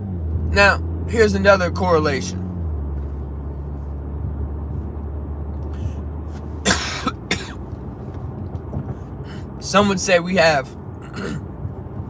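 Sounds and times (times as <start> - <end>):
car cabin low rumble: 0.0 - 12.0
man coughing: 6.6 - 7.7, 11.0 - 11.5.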